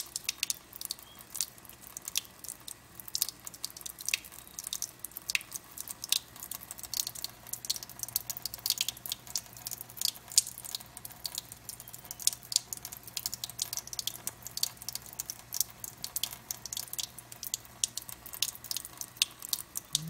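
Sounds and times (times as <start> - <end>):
water trickling into sink: 0.0 - 20.0.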